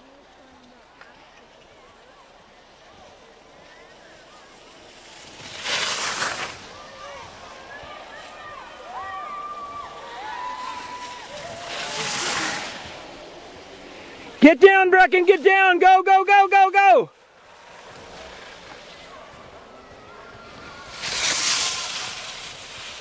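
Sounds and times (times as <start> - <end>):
distant spectators shouting: 0.0 - 23.0
skis scraping on hard snow: 0.5 - 23.0.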